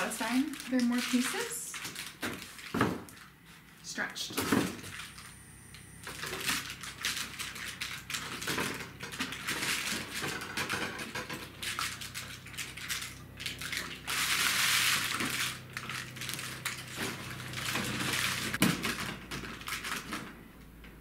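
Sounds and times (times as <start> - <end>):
paper lantern rustling: 0.0 - 3.8, 6.1 - 20.4.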